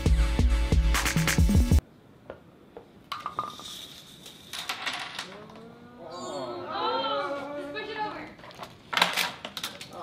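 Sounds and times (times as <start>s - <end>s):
pieces clattering on a table: 3.1s - 5.6s.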